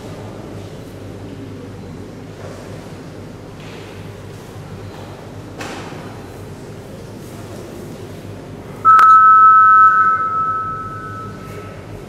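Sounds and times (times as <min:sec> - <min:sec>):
electronic two-tone beep: 0:08.9 - 0:11.8.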